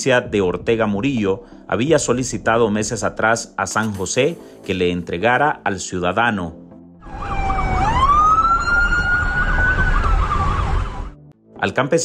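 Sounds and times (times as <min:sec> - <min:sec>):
fast up-and-down siren: 0:07.0 - 0:11.2
emergency siren wailing: 0:07.0 - 0:11.3.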